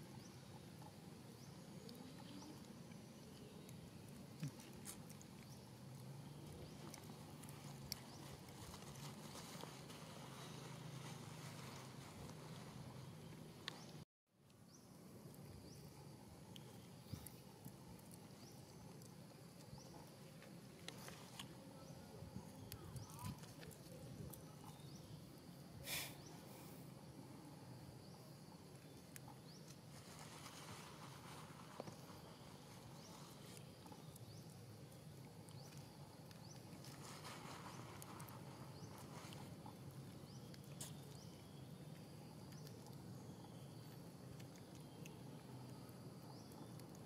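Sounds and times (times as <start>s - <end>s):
small clicks and rustles: 1.8s - 14.6s, 16.5s - 25.0s, 28.7s - 47.0s.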